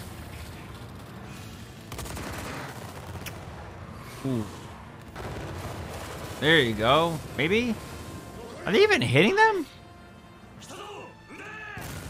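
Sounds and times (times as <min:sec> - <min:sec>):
rapid gunfire: 0:00.0 - 0:08.4.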